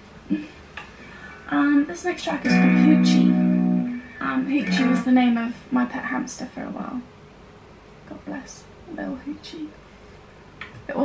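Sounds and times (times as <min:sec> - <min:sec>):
electric guitar chord ringing: 0:02.4 - 0:05.2.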